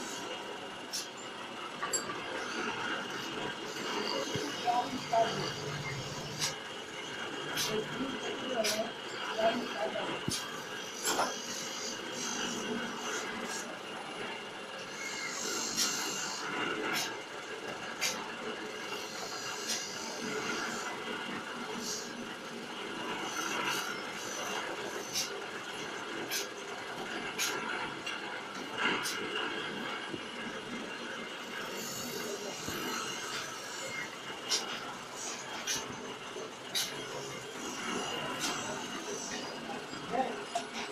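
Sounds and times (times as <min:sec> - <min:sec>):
machine mechanical hum: 0:00.0 - 0:40.9.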